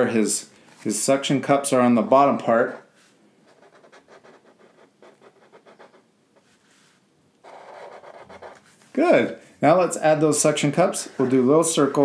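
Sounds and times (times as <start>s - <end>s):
felt-tip markers scratching paper: 3.5s - 6.0s, 7.4s - 8.7s.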